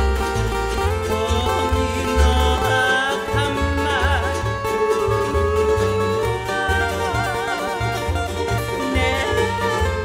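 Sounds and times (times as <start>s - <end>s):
plucked guitar and ukulele: 0.0s - 10.0s
sliding steel guitar: 0.0s - 10.0s
upright bass walking: 0.0s - 10.0s.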